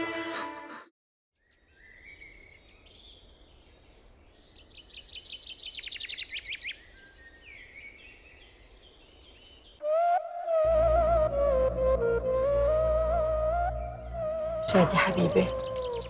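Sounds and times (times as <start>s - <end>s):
faint outdoor hiss: 1.4s - 9.8s
birds chirping and singing: 1.4s - 11.2s, 12.4s - 16.0s
bird trill: 13.6s - 16.0s.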